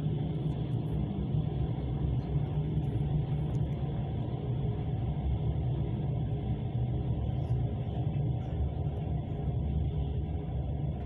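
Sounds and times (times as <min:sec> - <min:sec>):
train rumbling inside carriage: 0:00.0 - 0:11.0.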